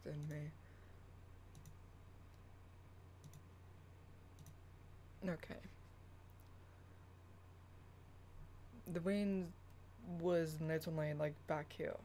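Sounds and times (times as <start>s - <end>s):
steady low hum: 0.0s - 12.0s
faint short clicks: 4.4s - 4.6s.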